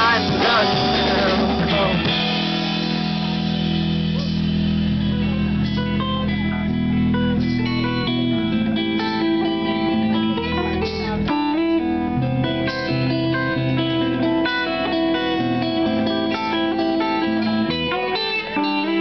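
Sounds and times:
electric guitars ringing chords: 0:00.0 - 0:19.0.

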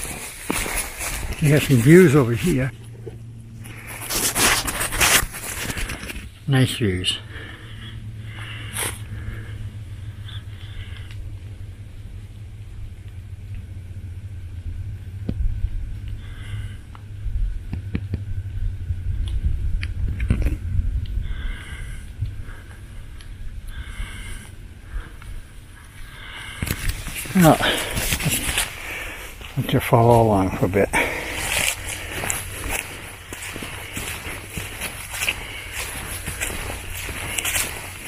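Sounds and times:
footsteps: 0:00.0 - 0:06.3, 0:23.8 - 0:38.0
wind buffeting microphone: 0:17.1 - 0:25.9.

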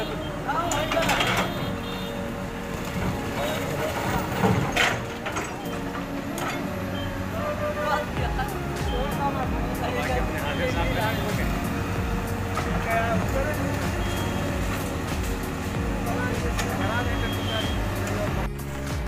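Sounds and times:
crowd voices: 0:00.0 - 0:19.0
excavator diesel engine running: 0:00.0 - 0:19.0.

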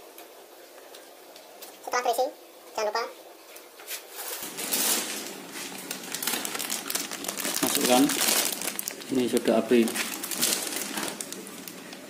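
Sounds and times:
plastic bag crinkling: 0:04.2 - 0:12.0.

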